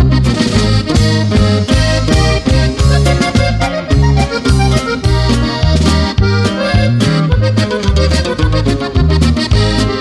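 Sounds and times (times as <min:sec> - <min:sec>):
accordion playing: 0:00.0 - 0:10.0
alternating bass beat: 0:00.0 - 0:10.0.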